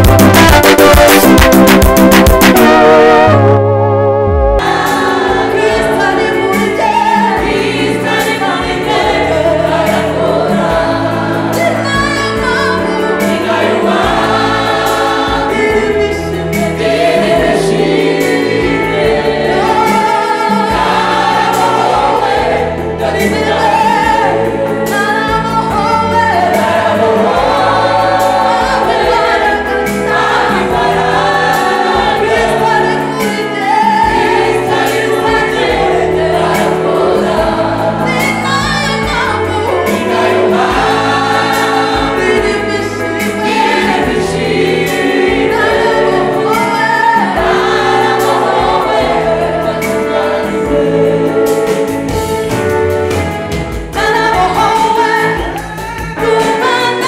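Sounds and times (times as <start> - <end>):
gospel choir singing: 0.0 - 3.6, 4.2 - 57.0
low musical backing: 0.0 - 57.0.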